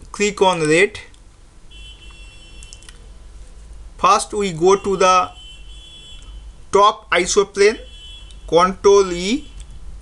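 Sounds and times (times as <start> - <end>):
faint clicks: 2.6 - 3.0.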